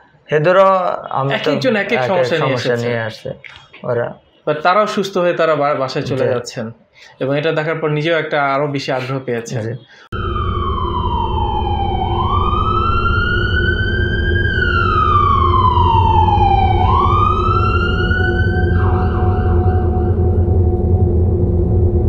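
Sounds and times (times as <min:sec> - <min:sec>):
emergency siren wailing: 0:10.1 - 0:22.0.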